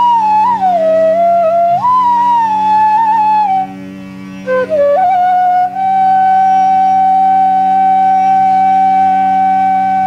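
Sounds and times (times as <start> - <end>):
bamboo flute long note: 0.0 - 10.0
low drone: 0.0 - 10.0.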